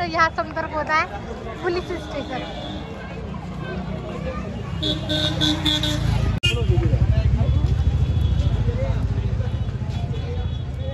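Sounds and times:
faint voices: 0:00.0 - 0:10.9
traffic rumble: 0:00.0 - 0:10.9.

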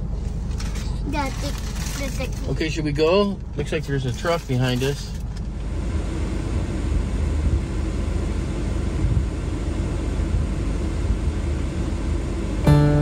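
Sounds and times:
vehicle engine rumble: 0:00.0 - 0:13.0.

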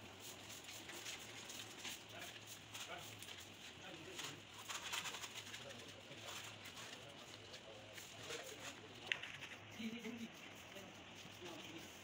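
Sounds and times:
hand pad rubbing plaster: 0:00.0 - 0:08.9, 0:09.5 - 0:12.0.

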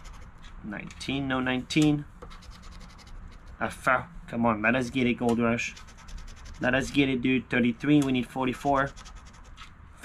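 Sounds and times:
scratching lottery ticket: 0:00.0 - 0:01.2, 0:02.3 - 0:03.8, 0:05.2 - 0:07.2, 0:07.9 - 0:09.8.

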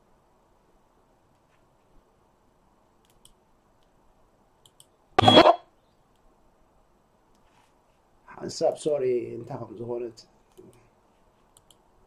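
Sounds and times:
faint clicks: 0:03.0 - 0:04.0, 0:04.6 - 0:05.0, 0:10.5 - 0:11.9.

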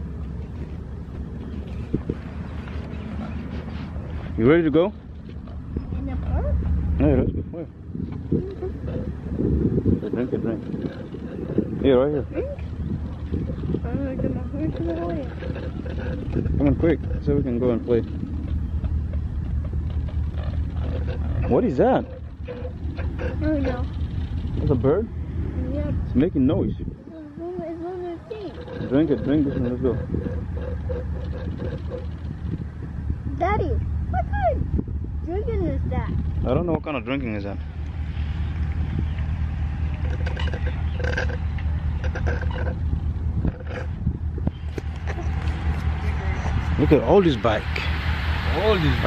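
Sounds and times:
low rumble: 0:00.0 - 0:49.0
wind buffeting microphone: 0:00.0 - 0:49.0
bird calling: 0:08.1 - 0:24.6, 0:27.0 - 0:32.8, 0:37.4 - 0:49.0.

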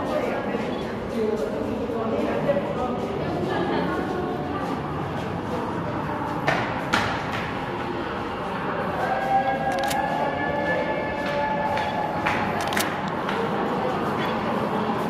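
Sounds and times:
voices echoing in a tunnel: 0:00.0 - 0:15.0
sharp clicks: 0:09.7 - 0:10.0, 0:12.6 - 0:13.2.

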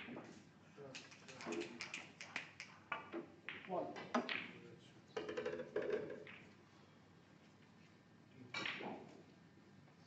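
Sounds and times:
snooker balls clicking: 0:01.0 - 0:04.6, 0:05.2 - 0:06.6.

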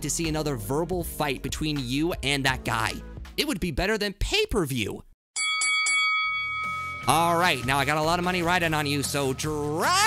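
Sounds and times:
boxing ring bell ringing: 0:05.4 - 0:08.3.

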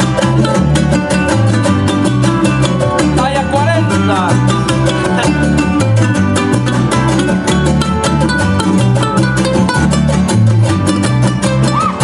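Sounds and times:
plucked upright bass: 0:00.0 - 0:12.0
strummed guitars fast rhythm: 0:00.0 - 0:12.0.

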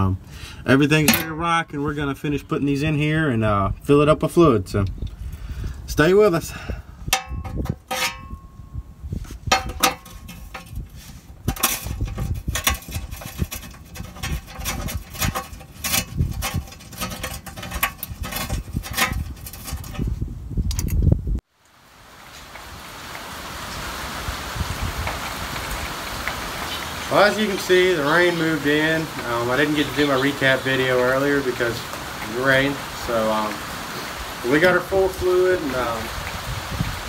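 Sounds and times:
rain on a metal roof: 0:21.4 - 0:37.0.

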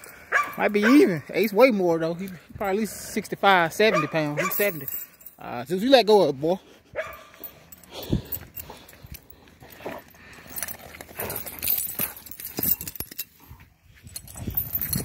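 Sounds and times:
dogs tussling: 0:07.0 - 0:13.3.

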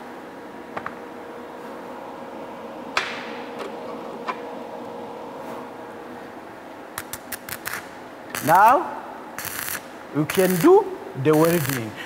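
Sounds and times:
welding machine hum: 0:00.8 - 0:12.0
electrode snaps: 0:07.0 - 0:08.6
welding electrode crackling: 0:07.0 - 0:12.0.

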